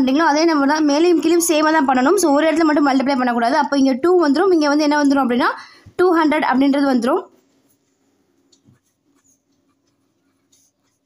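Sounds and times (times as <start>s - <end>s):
pen scratching on paper: 8.7s - 11.0s.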